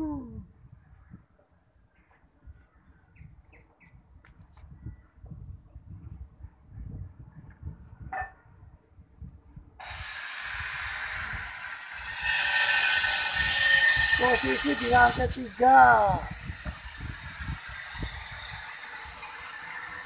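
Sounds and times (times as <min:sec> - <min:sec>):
wind rumbling on microphone: 0:00.0 - 0:11.7, 0:12.8 - 0:19.2.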